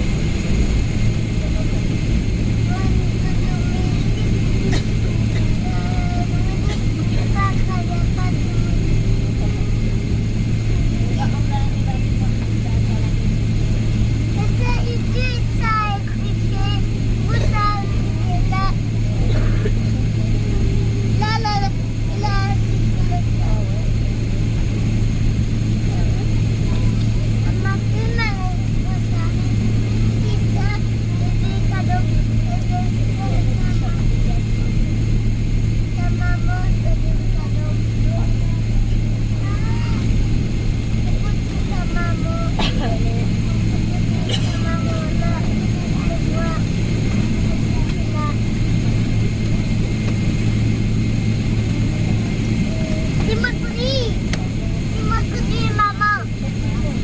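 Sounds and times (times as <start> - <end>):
aircraft cabin hum: 0.0 - 57.0
passengers talking faintly: 0.0 - 57.0.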